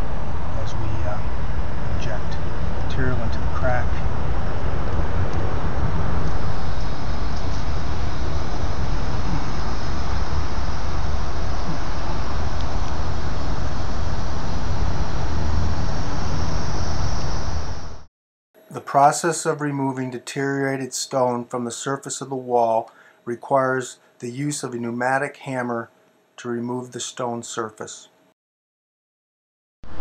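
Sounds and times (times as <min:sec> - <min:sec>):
low outdoor ambient rumble: 0:00.0 - 0:18.0.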